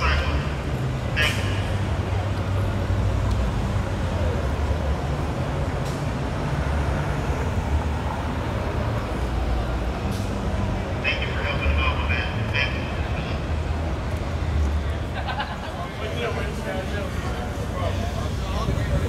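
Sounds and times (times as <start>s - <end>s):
passing cars rumbling: 0.0s - 19.0s.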